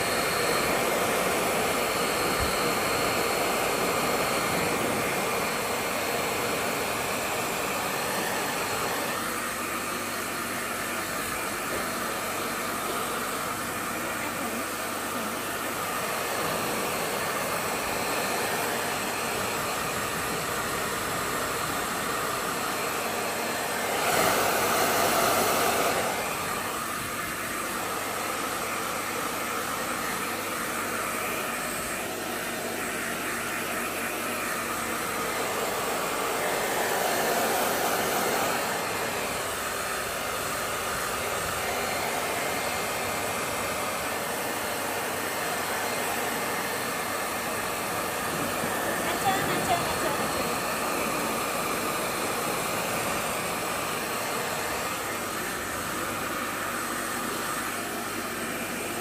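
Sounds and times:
hair dryer running: 0:00.0 - 0:59.0.

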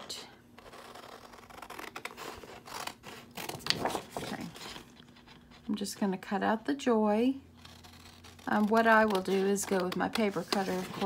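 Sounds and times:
scissors cutting paper: 0:07.6 - 0:11.0.

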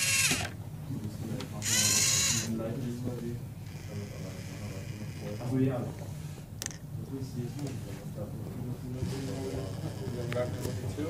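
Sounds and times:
motor and plastic gears whirring: 0:00.0 - 0:00.6, 0:01.6 - 0:02.6, 0:03.7 - 0:05.8, 0:09.0 - 0:11.0
people talking in background: 0:00.8 - 0:11.0.

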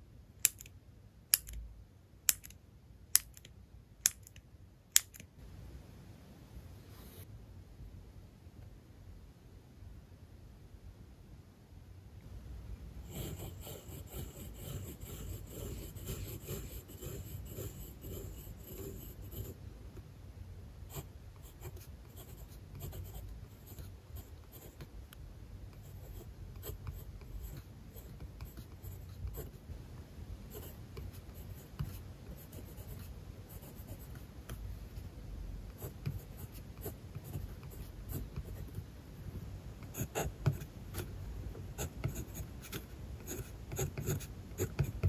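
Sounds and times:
pencil scratching on paper: 0:13.0 - 0:19.6, 0:20.9 - 0:24.9, 0:25.7 - 0:29.6, 0:30.5 - 0:34.3, 0:35.7 - 0:38.8, 0:39.8 - 0:45.0.

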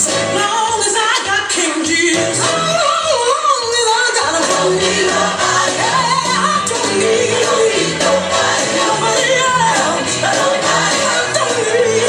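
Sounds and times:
gospel choir singing: 0:04.1 - 0:12.0.

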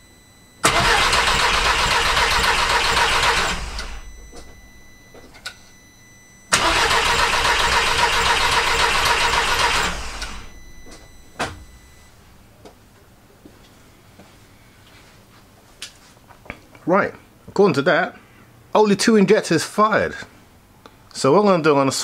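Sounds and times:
engine cranking on starter: 0:00.6 - 0:04.6, 0:06.5 - 0:11.9.

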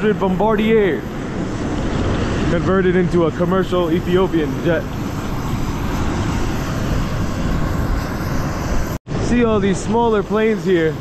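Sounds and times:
aircraft engine rushing: 0:00.0 - 0:11.0.

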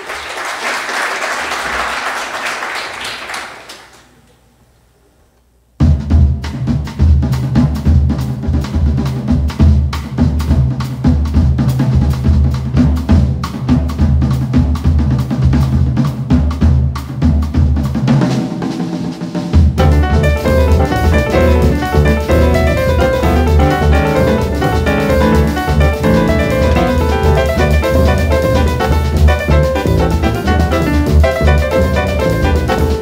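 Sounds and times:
fast drum kit groove: 0:05.8 - 0:33.0
piano: 0:19.7 - 0:33.0.

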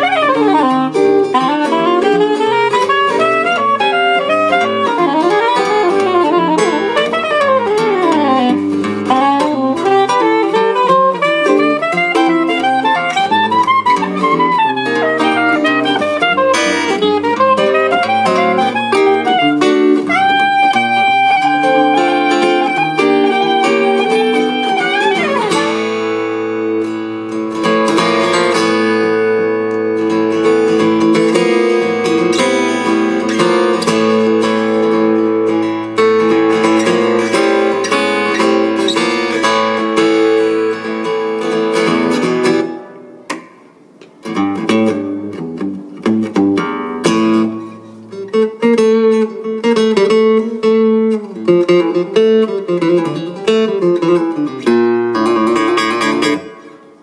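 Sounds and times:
soprano saxophone long note: 0:00.0 - 0:27.1
acoustic guitar strumming: 0:00.0 - 0:57.0.

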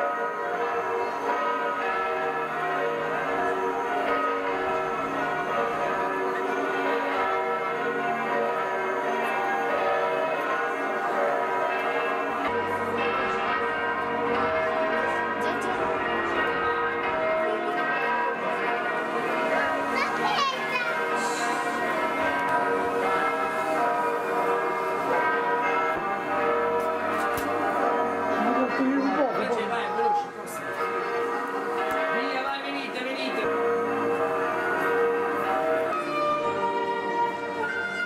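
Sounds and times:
church bells ringing: 0:00.0 - 0:38.0
voices of people and children: 0:00.9 - 0:25.2, 0:26.0 - 0:33.9.

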